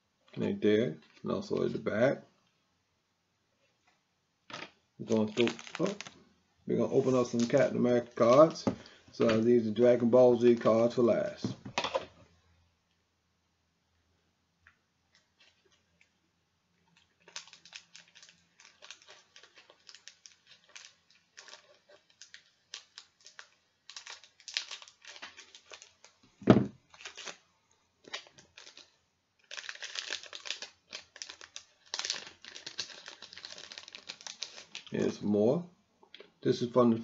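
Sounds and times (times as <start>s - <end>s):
plastic wrapper crinkling: 4.5s - 9.6s, 16.8s - 35.2s.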